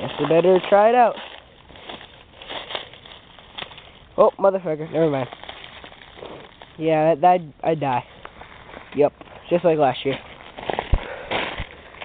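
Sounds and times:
icy twigs crackling and crunching: 0.0s - 12.0s.

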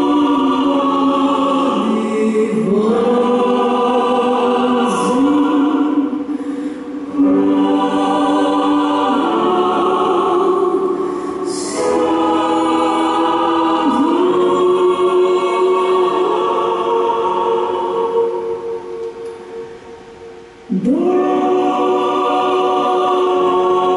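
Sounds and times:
choir singing: 0.0s - 23.9s
woman singing long notes: 20.6s - 23.9s.

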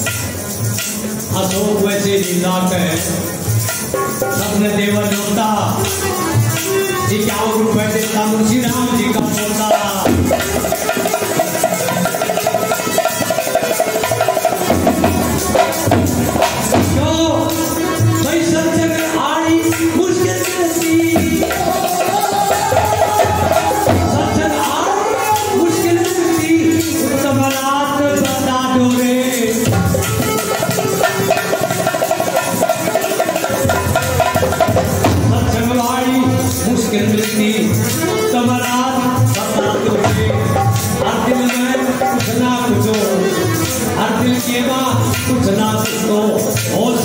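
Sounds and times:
hand drums: 0.0s - 47.0s
harmonium playing fast notes: 0.0s - 47.0s.

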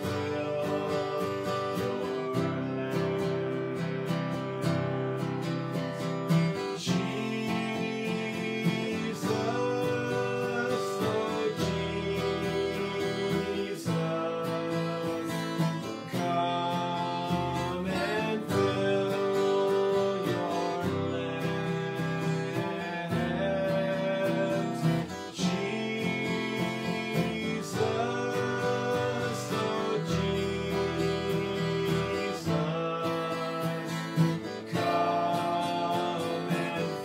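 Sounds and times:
acoustic guitar strumming: 0.0s - 37.0s
man singing: 0.0s - 37.0s.

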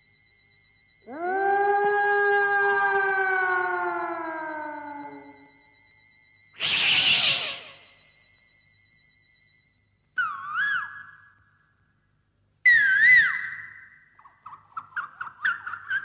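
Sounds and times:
short chirping notes: 6.6s - 8.0s
wavering whistle-like calls: 6.6s - 8.1s, 10.2s - 11.4s, 12.7s - 16.0s
held high tone: 6.6s - 8.4s.

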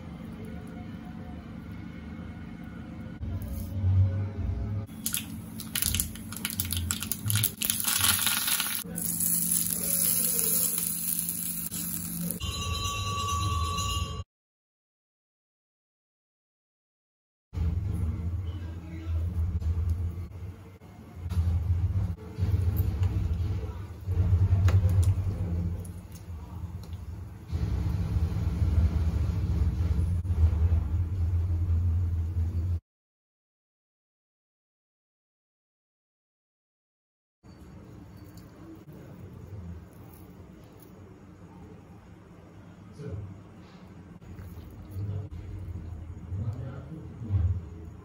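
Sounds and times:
low hum with hiss: 0.0s - 13.0s, 17.6s - 32.8s, 37.5s - 48.0s
seeds popping in hot oil: 4.9s - 12.4s
loud low rumble: 21.2s - 32.8s.

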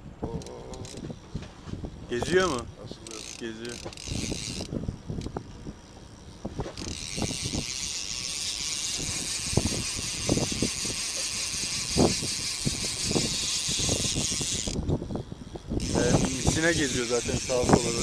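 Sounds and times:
fishing reel whirring: 0.3s - 18.0s.

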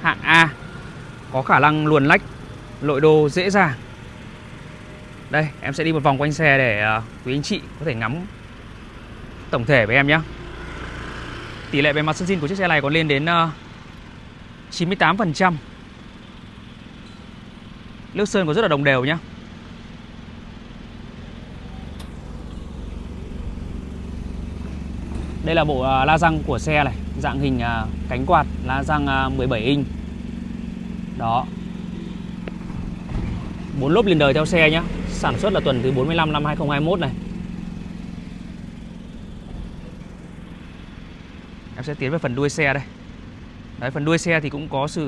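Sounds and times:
vehicle engine rumble: 0.0s - 45.0s.

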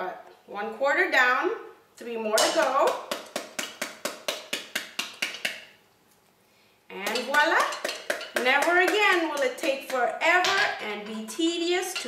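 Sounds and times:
metal scoop knocking on fruit: 7.0s - 11.3s.

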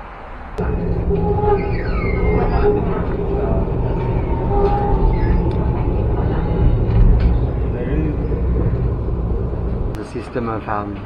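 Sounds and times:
tram rumbling on rails: 0.0s - 11.0s
faint squeak: 0.6s - 8.4s.

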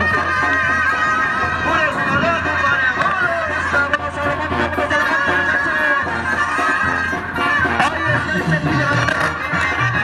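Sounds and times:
brass band playing: 0.0s - 10.0s
crowd chatter: 0.0s - 10.0s.

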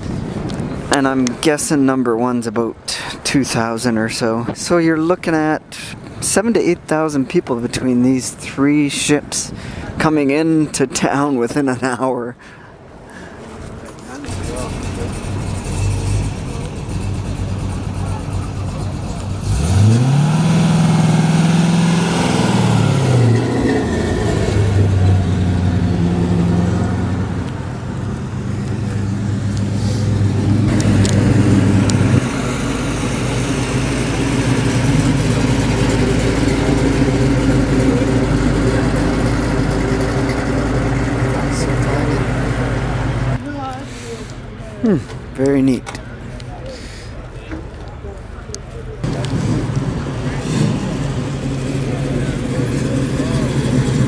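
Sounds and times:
car passing with deep rumble: 13.4s - 45.4s, 47.2s - 54.0s
car engine revving: 14.1s - 43.4s, 49.0s - 54.0s.

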